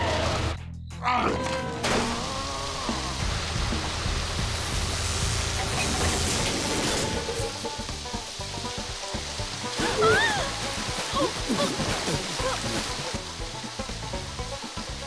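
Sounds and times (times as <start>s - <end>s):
background music: 0.0s - 15.0s
water jet spraying: 1.8s - 15.0s.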